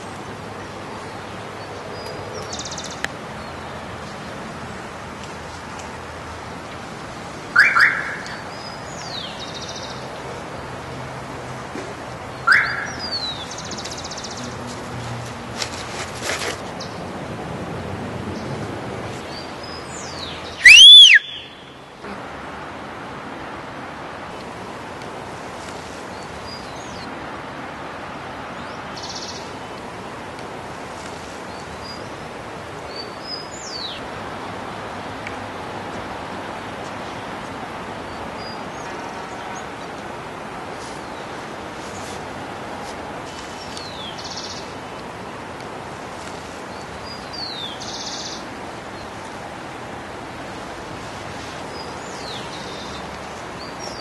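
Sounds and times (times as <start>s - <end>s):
steady outdoor hiss: 0.0s - 54.0s
birds calling: 7.5s - 10.7s, 12.2s - 14.8s, 19.2s - 22.2s, 43.3s - 45.0s, 46.6s - 49.3s
bird whistling: 12.5s - 13.1s, 20.6s - 21.6s.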